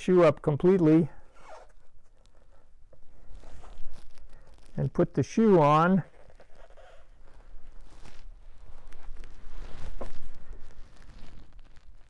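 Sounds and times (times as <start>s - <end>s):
hook-and-loop strap ripping: 1.3s - 2.4s, 3.3s - 5.1s.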